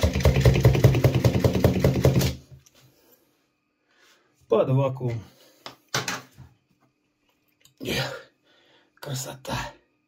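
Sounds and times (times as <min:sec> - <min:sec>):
vacuum pump pumping: 0:00.0 - 0:02.4.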